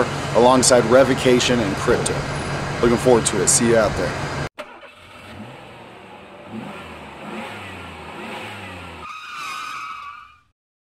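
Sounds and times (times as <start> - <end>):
vehicle engine revving: 0.0 - 9.2.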